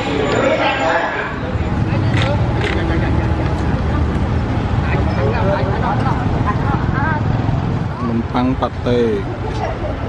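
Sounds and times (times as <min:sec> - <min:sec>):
car engines passing: 0:00.0 - 0:10.0
motorbike engines passing: 0:00.0 - 0:10.0
people's voices: 0:00.0 - 0:10.0.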